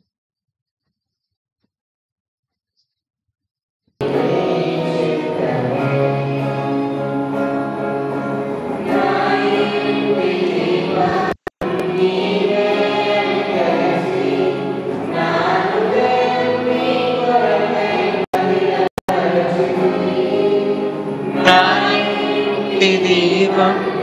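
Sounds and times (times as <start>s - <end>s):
group singing through microphones: 4.0s - 24.0s.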